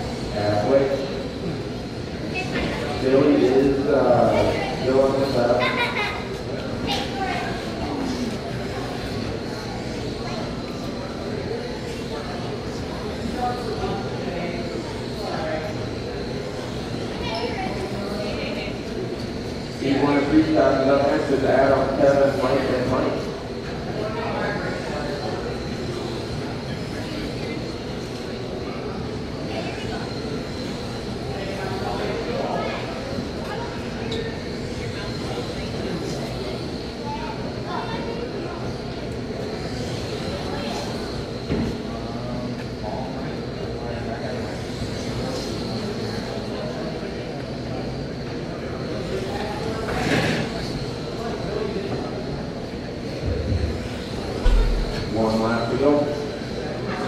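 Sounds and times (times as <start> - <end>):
electric toy trucks humming: 0.0 - 57.0
high motor whine: 53.2 - 56.7.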